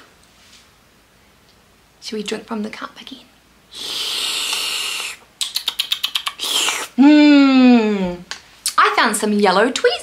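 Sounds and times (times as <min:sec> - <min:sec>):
breathy exhale: 0:03.7 - 0:05.2.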